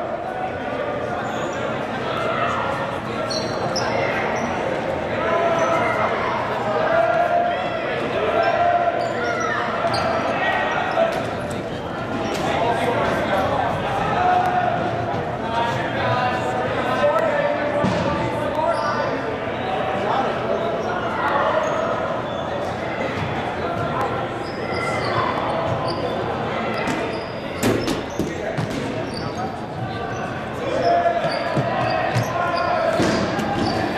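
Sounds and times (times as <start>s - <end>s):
sneaker squeaks: 1.1s - 2.6s, 3.2s - 4.8s, 8.4s - 13.5s, 17.8s - 19.2s, 20.7s - 33.9s
players calling out: 19.8s - 33.9s.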